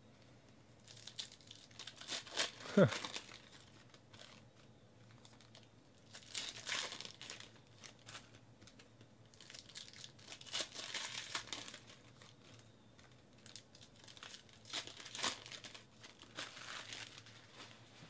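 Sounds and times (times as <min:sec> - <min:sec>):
plastic wrappers crinkling and tearing: 0:00.8 - 0:17.8.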